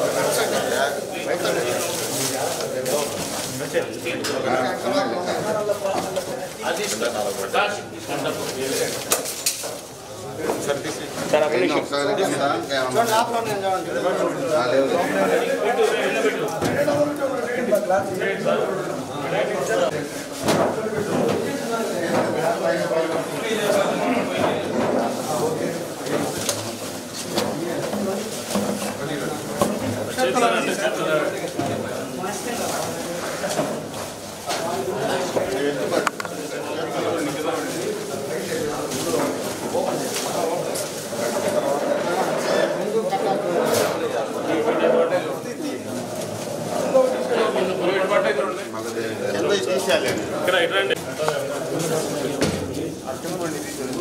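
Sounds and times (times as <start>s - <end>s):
papers rustling: 0.0s - 11.5s, 19.4s - 42.8s, 49.8s - 54.0s
indistinct talk of people: 0.0s - 54.0s
murmur of voices: 0.0s - 54.0s.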